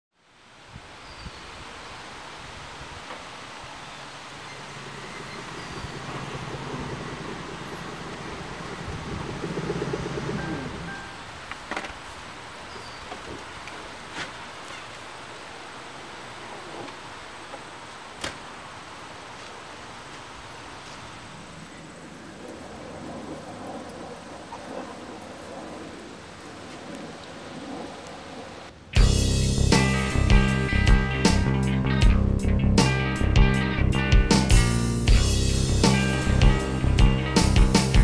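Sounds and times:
rustling leaves: 0.1 - 38.0
wind: 0.1 - 38.0
faint bird chirps: 1.0 - 1.6, 3.8 - 8.4, 12.6 - 13.2
car engine: 4.8 - 10.9.

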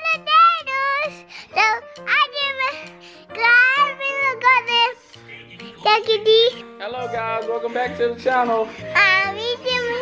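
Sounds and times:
child singing: 0.0 - 5.0, 5.8 - 6.6, 8.9 - 10.0
background music: 0.0 - 10.0.

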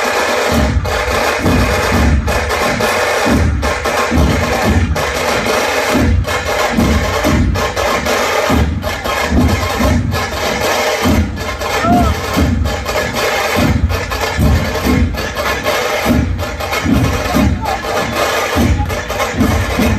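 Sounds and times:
bright percussion clatter: 0.0 - 19.9
drum ensemble playing: 0.0 - 19.9
heavy low drum beats: 0.0 - 19.9.

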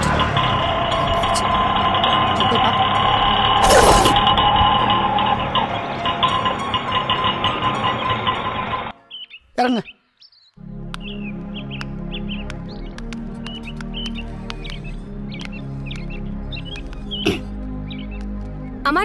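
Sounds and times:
low steady drone: 0.0 - 9.0
background music: 0.0 - 19.0
birds chirping: 0.0 - 19.0.

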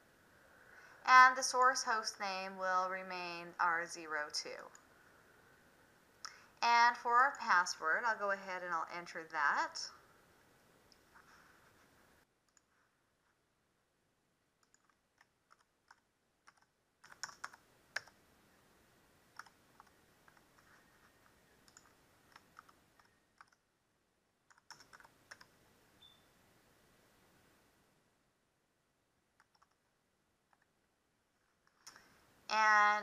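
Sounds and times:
computer keyboard keystrokes: 14.6 - 18.2, 19.4 - 20.4, 21.6 - 23.6, 24.5 - 25.5, 29.4 - 29.8.

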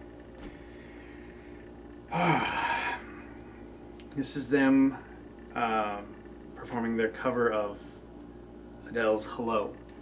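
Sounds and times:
faint room hum: 0.0 - 10.0
man sighing: 2.1 - 3.3.

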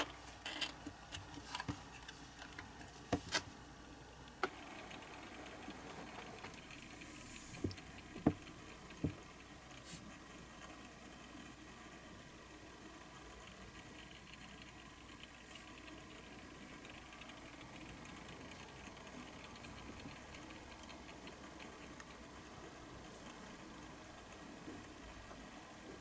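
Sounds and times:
faint hiss: 1.8 - 26.0
turntable motor ticking: 4.2 - 26.0.

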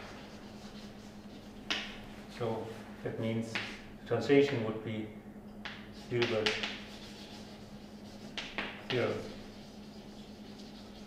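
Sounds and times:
chalk scratching on blackboard: 0.0 - 2.3, 6.0 - 11.0
chalk tap on board: 1.6 - 2.0, 3.5 - 3.8, 5.6 - 7.4, 8.2 - 9.3.

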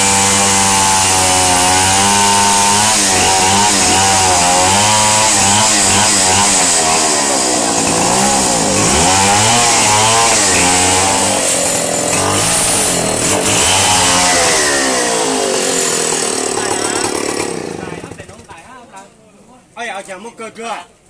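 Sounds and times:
chainsaw cutting wood: 0.0 - 18.6.

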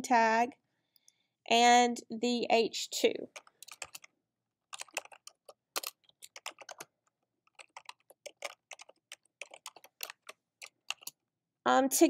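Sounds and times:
typing on computer keyboard: 3.3 - 4.1, 4.7 - 6.9, 7.5 - 11.2.

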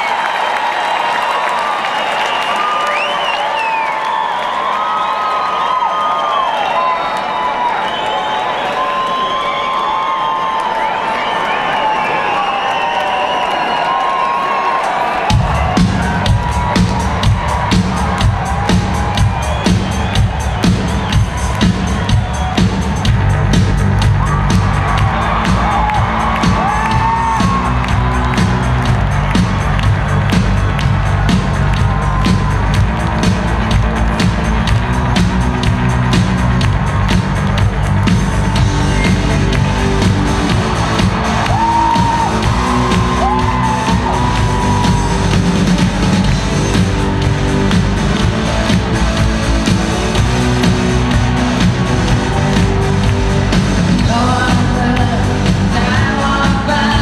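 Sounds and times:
audience whooping: 0.0 - 55.2
rapid drum and cymbal hits: 15.2 - 57.0.

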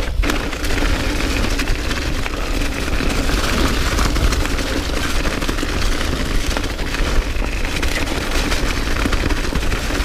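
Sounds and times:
bike rattling: 0.0 - 10.0.

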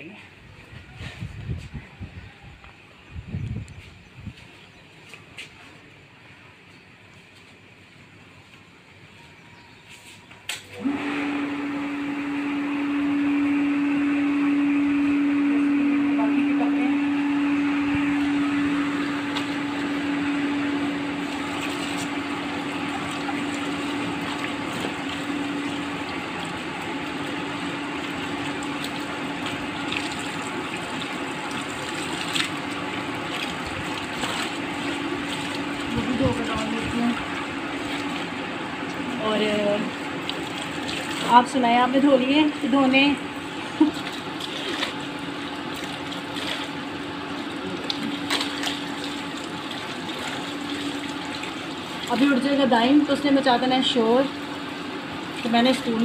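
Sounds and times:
steady hum: 10.8 - 56.0
water rushing from hose: 10.8 - 56.0.

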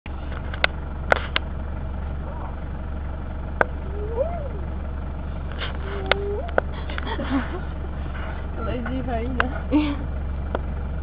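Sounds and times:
vehicle engine idling: 0.1 - 11.0
hyena whooping: 3.7 - 4.8, 5.7 - 6.8.

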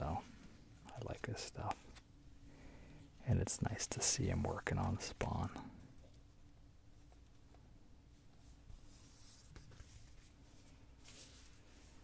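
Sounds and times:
low steady hum: 0.0 - 12.0
paper rustling: 8.7 - 12.0.

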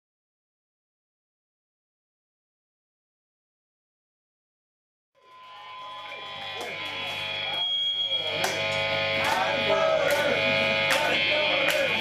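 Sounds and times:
steady high ringing tone: 5.2 - 11.7
voices: 5.9 - 12.0.

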